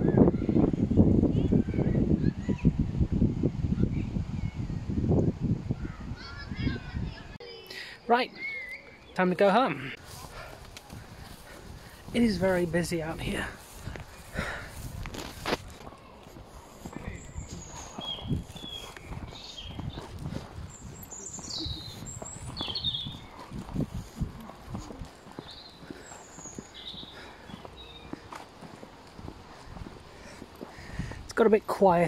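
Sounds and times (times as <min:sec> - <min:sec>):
bird chirps: 0:07.5 - 0:10.0, 0:16.9 - 0:29.9
footsteps on paved path: 0:09.1 - 0:32.0.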